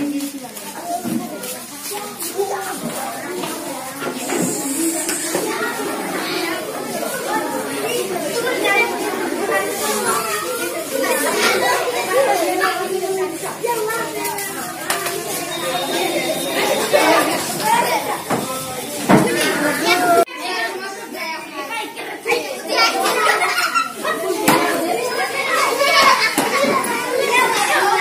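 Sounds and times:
children chattering: 0.0s - 28.0s.

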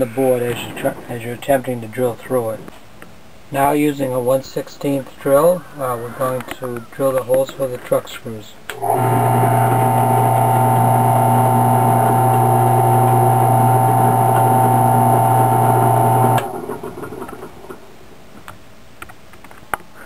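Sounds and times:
drill press humming and whining: 8.8s - 17.8s.

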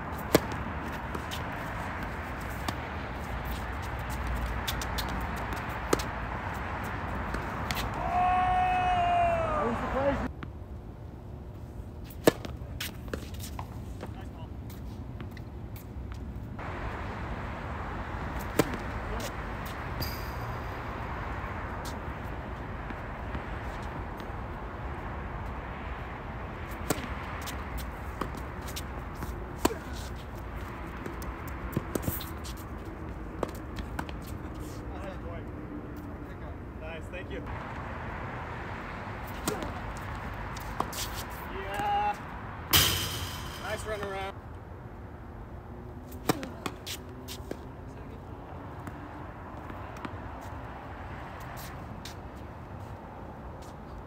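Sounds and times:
tennis racket hitting ball: 0.1s - 8.2s, 12.1s - 13.8s, 18.3s - 22.0s, 26.7s - 32.6s, 39.2s - 41.4s, 42.7s - 44.2s, 46.2s - 47.6s
steady background rush: 42.2s - 44.4s.

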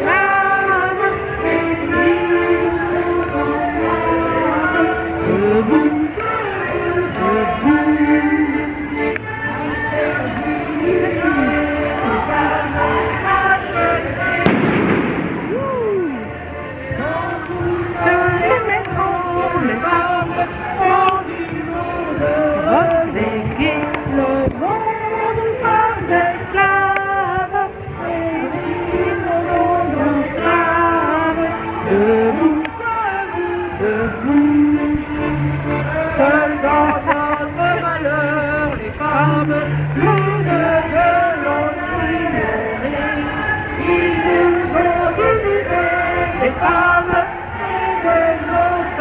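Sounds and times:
accordion low sustained notes: 0.0s - 49.0s
street choir singing: 0.0s - 49.0s.

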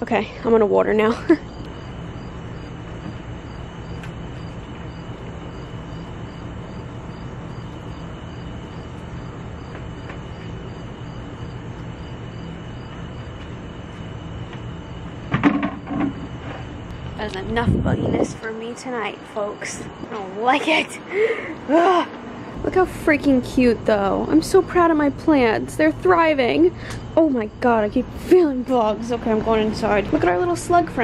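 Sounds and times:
high insect trill: 0.0s - 31.0s
insects chirping: 0.0s - 31.0s.

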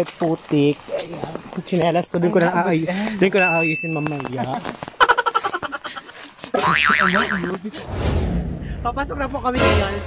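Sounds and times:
comic boing sound effect: 6.6s - 7.5s.

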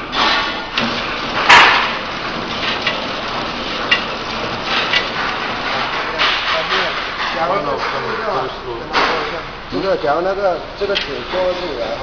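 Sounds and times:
packing machine knocking and clattering: 0.0s - 9.4s.

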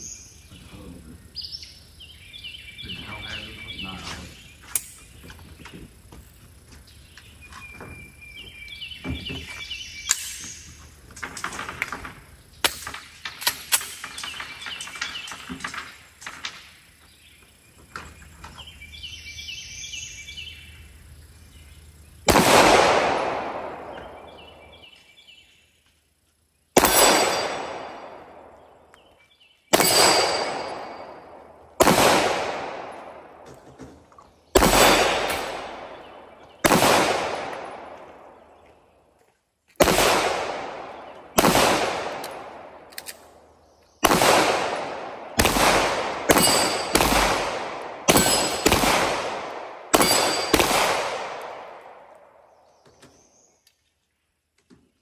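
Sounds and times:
pistol shots echoing: 22.3s - 24.8s, 26.8s - 28.9s, 29.7s - 33.5s, 34.5s - 38.5s, 39.8s - 52.6s.

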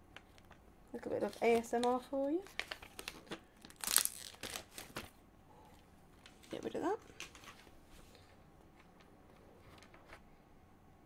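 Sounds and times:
plastic wrap ripping and crinkling: 1.0s - 5.2s.

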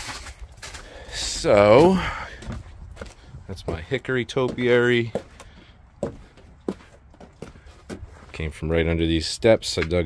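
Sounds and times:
footsteps on wooden boards: 0.0s - 8.5s.

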